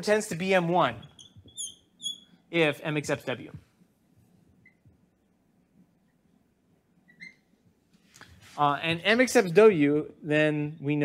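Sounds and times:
marker squeaking on whiteboard: 0:00.9 - 0:02.4, 0:04.5 - 0:04.9, 0:07.0 - 0:07.6.

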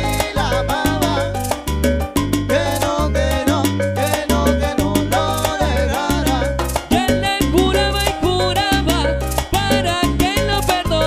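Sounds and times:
bass line: 0:00.0 - 0:11.0
busy percussion: 0:00.0 - 0:11.0
live salsa band playing: 0:00.0 - 0:11.0.

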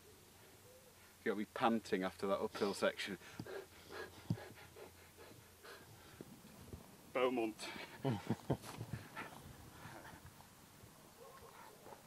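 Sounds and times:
person panting: 0:02.6 - 0:06.2.

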